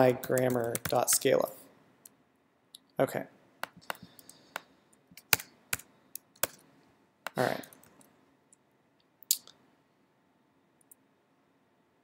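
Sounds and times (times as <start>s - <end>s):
computer keyboard keystrokes: 0.0s - 1.3s, 3.6s - 6.6s.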